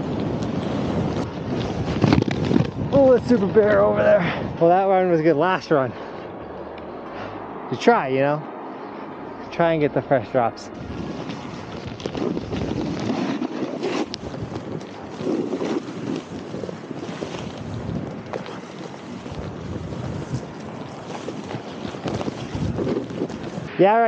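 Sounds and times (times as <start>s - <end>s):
boards carving through powder snow: 0.0s - 5.2s, 10.8s - 24.0s
wind buffeting microphone: 0.0s - 24.0s.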